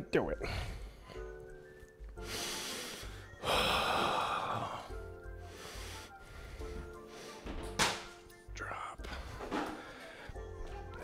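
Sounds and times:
background music with steady beat: 0:00.0 - 0:11.0.

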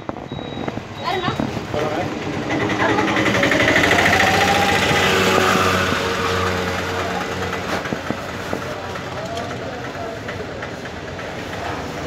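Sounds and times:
street traffic noise: 0:00.0 - 0:12.0
vehicle engine running: 0:01.3 - 0:12.0.

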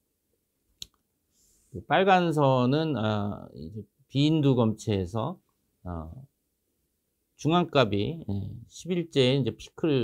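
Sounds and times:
faint breath: 0:01.3 - 0:01.8
man speaking: 0:01.8 - 0:06.3, 0:07.4 - 0:10.0.

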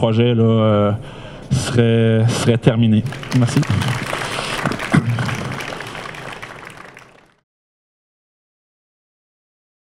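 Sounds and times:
audience applauding: 0:03.0 - 0:07.4.

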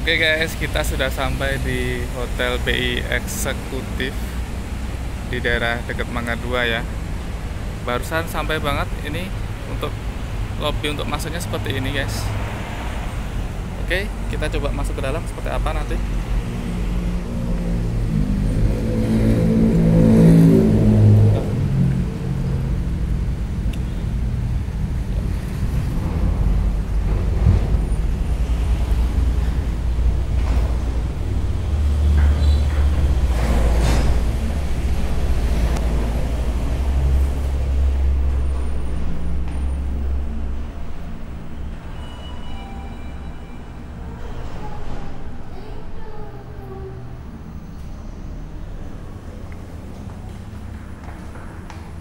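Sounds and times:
vehicle engine passing: 0:00.0 - 0:42.2
road traffic rumble: 0:00.0 - 0:52.0.

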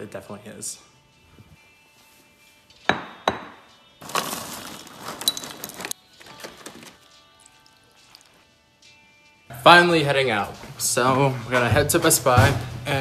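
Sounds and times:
faint background music: 0:00.0 - 0:13.0
bowl knocking on countertop: 0:02.9 - 0:03.6
cereal pouring into a bowl: 0:04.0 - 0:07.5.

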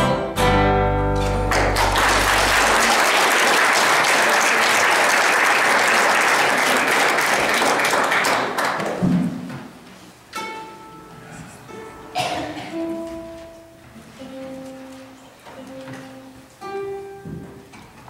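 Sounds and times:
audience applauding: 0:01.2 - 0:09.0.

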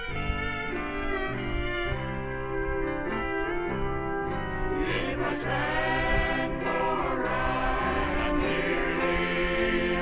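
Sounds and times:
choir holding sustained chords: 0:00.0 - 0:10.0.

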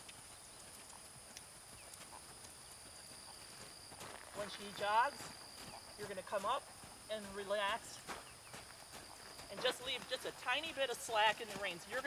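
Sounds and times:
horse hoofbeats on sand: 0:00.0 - 0:12.0
high insect drone: 0:00.2 - 0:12.0.

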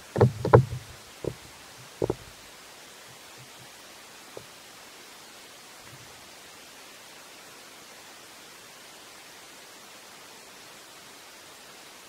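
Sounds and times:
dull heavy thuds: 0:00.0 - 0:02.4
steady hiss: 0:00.0 - 0:12.0.

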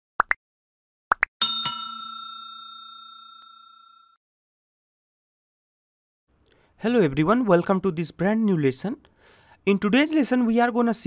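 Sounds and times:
bell chime ringing: 0:01.4 - 0:04.2.

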